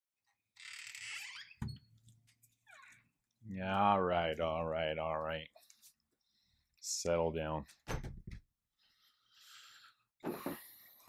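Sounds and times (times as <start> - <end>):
door scraping and squeaking: 0.6 - 1.9.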